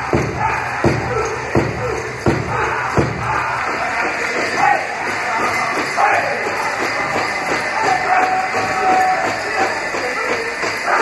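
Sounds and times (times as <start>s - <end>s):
big drum beat: 0.0s - 11.0s
voices and crowd noise: 0.0s - 11.0s.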